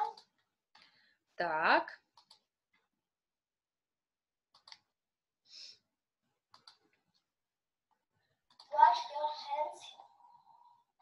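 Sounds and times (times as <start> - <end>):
computer mouse clicks: 2.1 - 2.5, 4.5 - 5.0, 6.5 - 7.3, 8.4 - 8.8.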